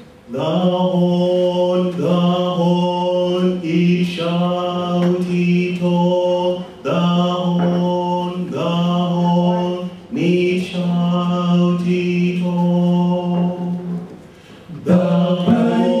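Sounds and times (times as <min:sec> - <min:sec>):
male vocal group singing a cappella: 0:00.3 - 0:16.0.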